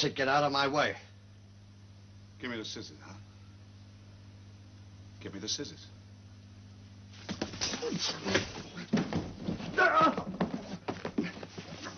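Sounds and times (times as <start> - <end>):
scuffling struggle: 7.2 - 11.9
knocks and thumps: 7.3 - 11.7
shrill strained cry: 9.7 - 10.5.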